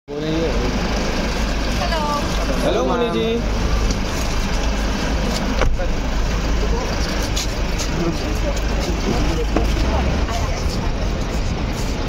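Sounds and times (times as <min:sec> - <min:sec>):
vehicles idling and passing: 0:00.1 - 0:12.0.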